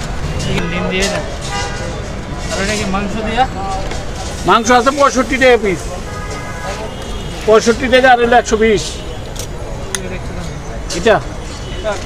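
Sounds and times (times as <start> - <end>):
traffic noise: 0.0 - 12.0
people talking: 0.4 - 12.0
vehicle horn: 1.4 - 2.0, 6.0 - 7.5.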